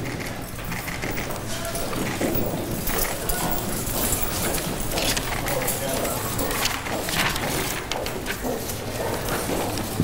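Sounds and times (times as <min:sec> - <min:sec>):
room murmur: 0:00.0 - 0:10.0.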